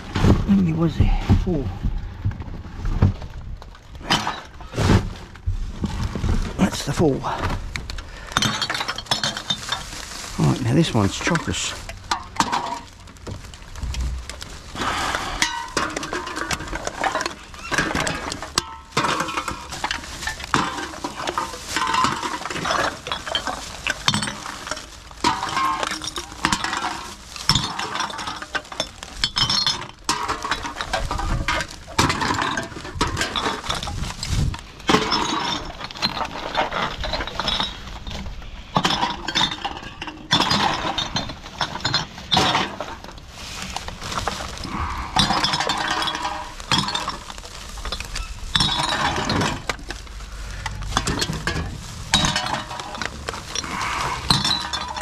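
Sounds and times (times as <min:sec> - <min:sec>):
plastic bag rustling: 0:00.0 - 0:55.0
cans and bottles clinking: 0:06.9 - 0:55.0.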